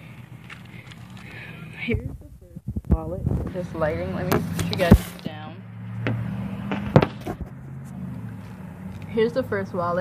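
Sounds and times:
steady low hum: 0.0s - 8.7s.

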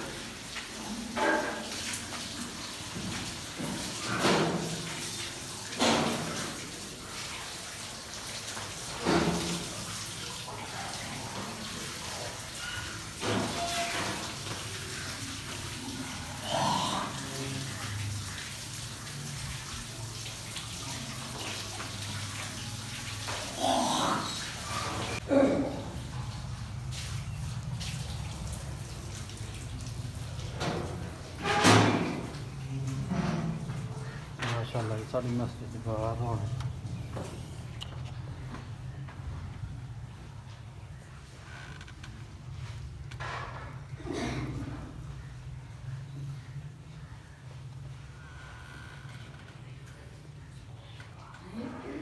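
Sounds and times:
water splashing: 0.0s - 37.6s
water running from taps: 0.0s - 51.4s.

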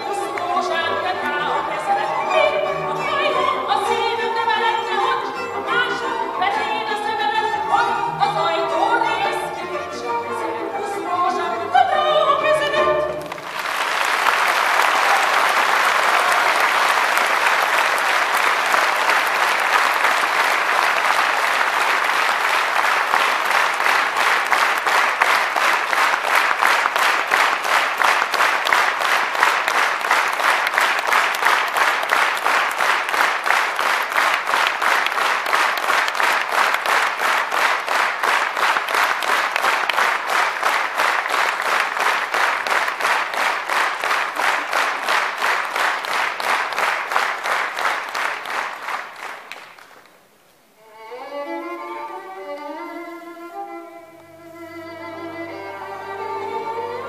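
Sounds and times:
audience applauding: 13.0s - 50.4s
rhythmic clapping in unison: 13.1s - 50.2s.

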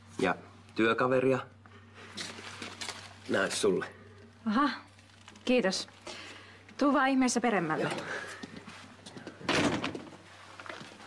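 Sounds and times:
door shutting with thud: 9.4s - 10.2s.

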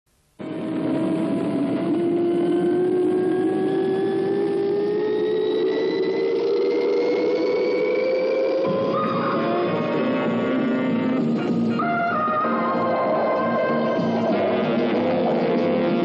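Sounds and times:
rising whine: 0.4s - 16.0s.

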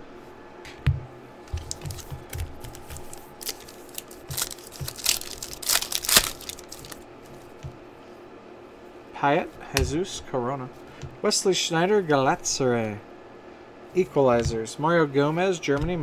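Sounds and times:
foil pack crinkling and ripping: 1.6s - 7.0s.

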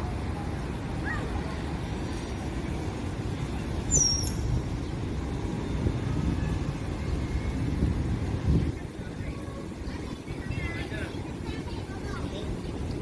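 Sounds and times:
background traffic rumble: 0.0s - 13.0s.

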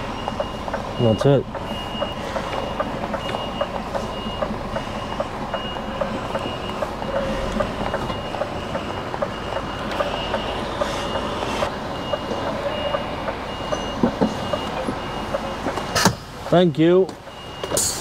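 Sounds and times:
truck engine rumbling: 0.0s - 18.0s
truck reversing alarm beeping: 0.0s - 18.0s.

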